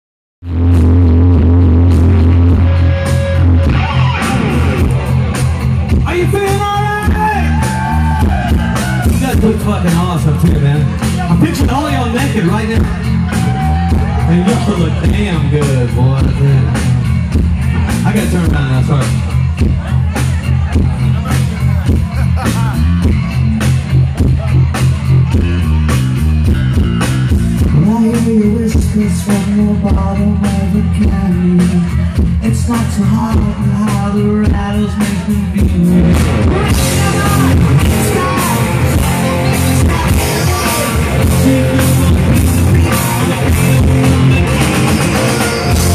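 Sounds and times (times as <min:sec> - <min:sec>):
bass guitar: 0:00.4 - 0:45.9
electric guitars: 0:00.4 - 0:45.9
live rock band playing: 0:00.4 - 0:45.9
drum kit beat: 0:00.5 - 0:45.9.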